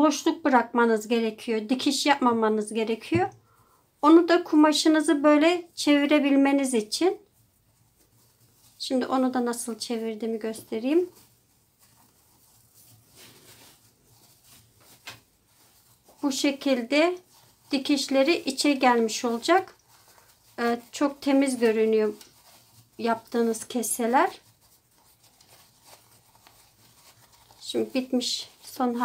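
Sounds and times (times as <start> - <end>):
fabric pouch rustling: 6.6 - 29.0.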